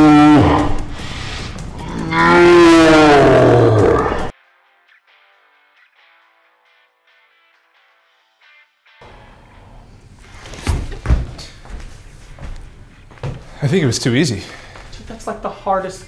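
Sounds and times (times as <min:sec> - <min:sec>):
loud moo-like groan: 0:00.0 - 0:00.9, 0:01.7 - 0:04.3.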